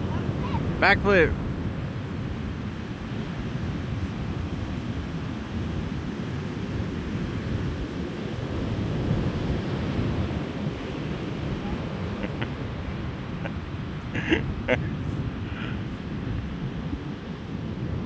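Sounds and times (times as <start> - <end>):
surf: 0.0 - 18.0
wind buffeting microphone: 0.0 - 18.0.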